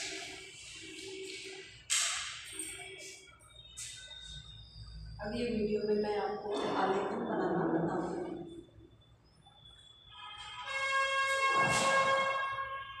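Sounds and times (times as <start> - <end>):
woman's voice: 5.2 - 8.6.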